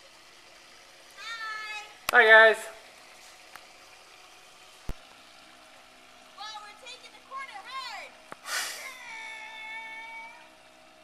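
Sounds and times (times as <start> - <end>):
short breathy hiss: 8.4 - 9.0.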